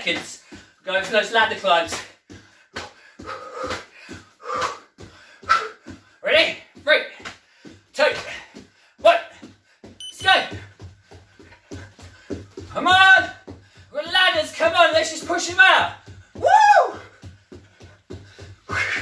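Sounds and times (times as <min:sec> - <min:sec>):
bare feet thudding on wooden floor: 0:01.9 - 0:19.0.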